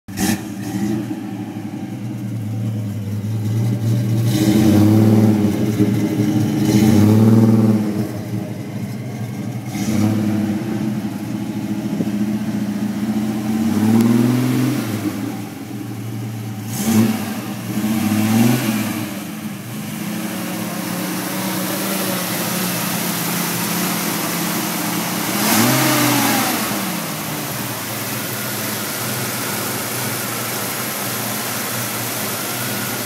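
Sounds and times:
car engine idling and revving: 0:00.1 - 0:33.0.

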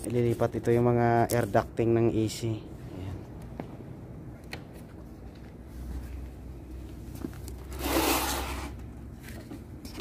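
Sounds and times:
low steady hum: 0:00.0 - 0:10.0
plastic panel rustling scrape: 0:07.7 - 0:08.8.

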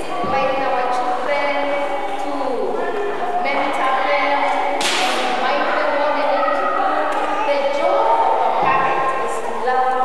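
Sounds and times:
woman speaking through microphone: 0:00.0 - 0:10.0
sharp crack: 0:04.8 - 0:05.4.

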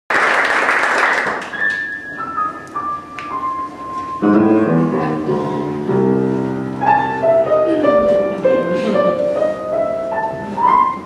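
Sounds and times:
audience applause: 0:00.1 - 0:01.8
high piano notes: 0:01.5 - 0:11.0.

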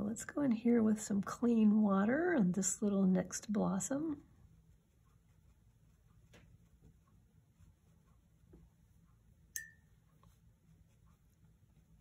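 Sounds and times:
sharp ringing clink: 0:09.6 - 0:09.9.

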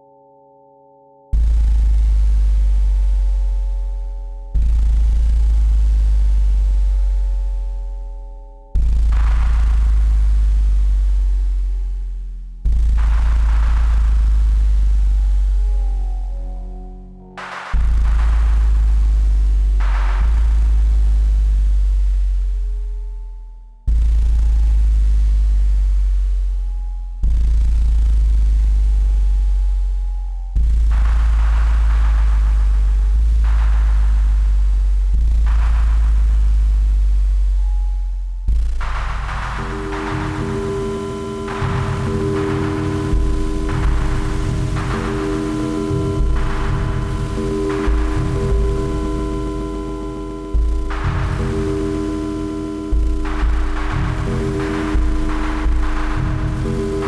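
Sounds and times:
gong-like ringing drone: 0:00.0 - 0:11.9, 0:12.6 - 0:23.3, 0:38.8 - 0:57.0
deep electronic bass tone: 0:01.3 - 0:57.0
electronic drum strikes: 0:01.4 - 0:08.0, 0:08.7 - 0:11.9, 0:12.6 - 0:16.4, 0:17.3 - 0:21.9, 0:30.6 - 0:37.2, 0:38.4 - 0:57.0
deep booms: 0:08.8 - 0:11.9, 0:12.6 - 0:15.6, 0:38.5 - 0:57.0
grainy shimmering synth layer: 0:38.8 - 0:57.0
rush of noise: 0:38.8 - 0:57.0.

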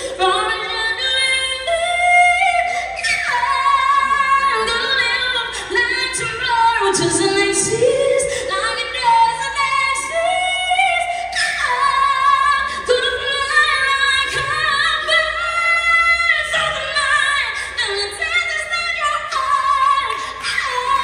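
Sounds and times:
person singing into a microphone: 0:00.0 - 0:21.0.

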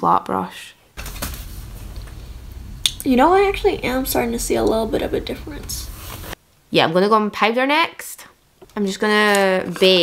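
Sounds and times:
low room hum: 0:01.0 - 0:06.4
faint hiss: 0:01.0 - 0:06.7.

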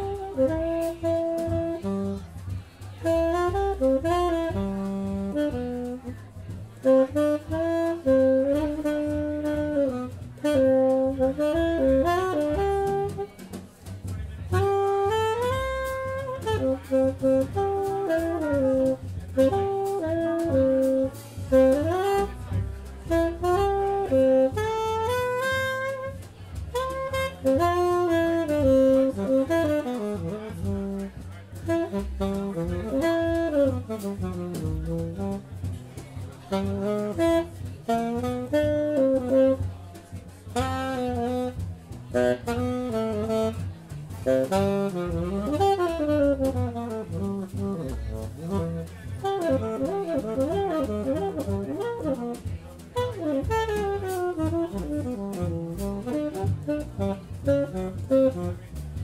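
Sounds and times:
drums: 0:00.0 - 0:59.0
tenor saxophone: 0:00.0 - 0:59.0
trumpet: 0:00.0 - 0:59.0
walking string bass: 0:00.0 - 0:59.0.

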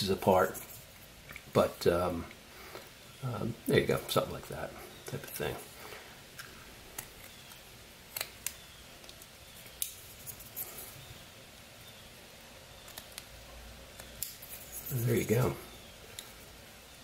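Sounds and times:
faint scraping: 0:14.4 - 0:15.8.

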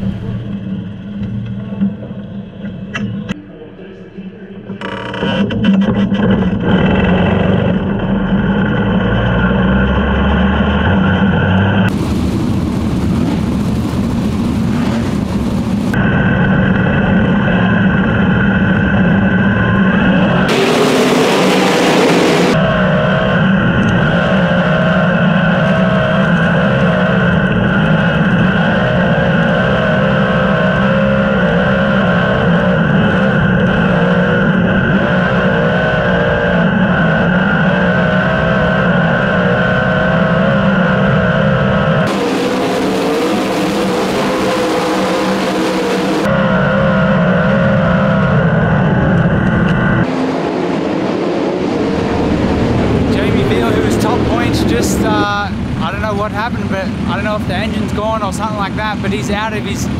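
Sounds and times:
race car engine running: 0:00.0 - 0:03.4, 0:04.7 - 0:59.9
rush of noise: 0:00.0 - 0:59.9.

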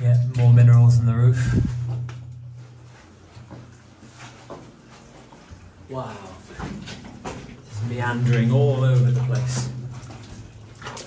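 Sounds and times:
low steady hum: 0:00.0 - 0:11.0
footsteps and scuffs: 0:01.7 - 0:05.8.

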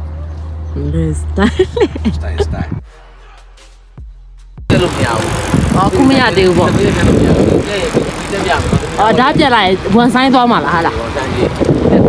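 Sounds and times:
wind rumbling on microphone: 0:04.7 - 0:12.0.

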